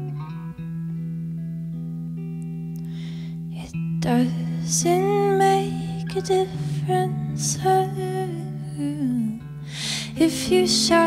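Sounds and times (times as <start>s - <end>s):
electric guitar playing slowly: 0.0s - 11.0s.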